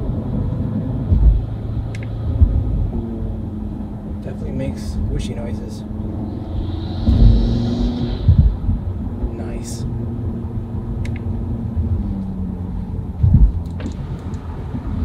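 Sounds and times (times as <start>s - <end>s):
car engine drone in cabin: 0.0s - 15.0s
heavy low thumps: 0.9s - 3.1s, 5.8s - 10.5s, 13.0s - 13.6s
intake air hiss: 6.2s - 9.0s.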